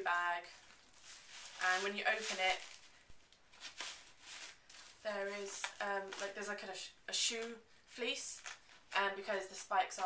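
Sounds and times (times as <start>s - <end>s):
fabric bag rustling: 0.0s - 6.6s.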